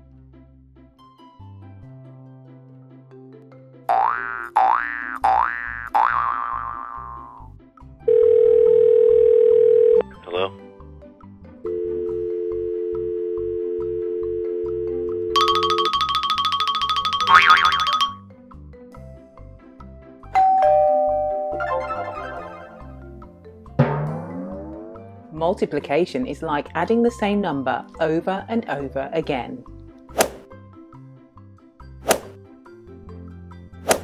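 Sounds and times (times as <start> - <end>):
light background music: 0.0 - 6.3, 7.0 - 34.0
cartoon boing effects: 3.9 - 7.5, 17.2 - 18.0, 23.8 - 25.3
two-note ding-dong chime: 20.4 - 22.2.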